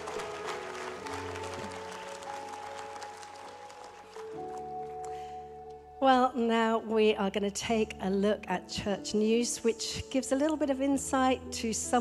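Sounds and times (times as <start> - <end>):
congregation applauding: 0.0 - 5.4.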